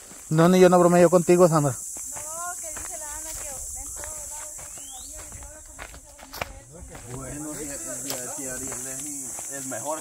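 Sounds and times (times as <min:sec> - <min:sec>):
insects buzzing: 0:00.0 - 0:10.0
man talking: 0:06.8 - 0:10.0.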